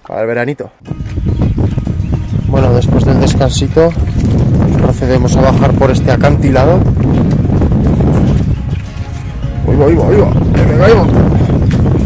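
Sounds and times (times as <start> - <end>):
low rumble on microphone: 0.8 - 12.0
footsteps on stony path: 0.9 - 12.0.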